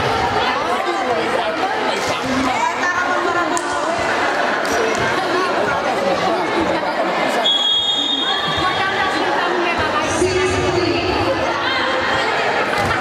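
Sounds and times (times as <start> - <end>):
people calling out and chattering: 0.0 - 13.0
referee's whistle: 7.4 - 8.6.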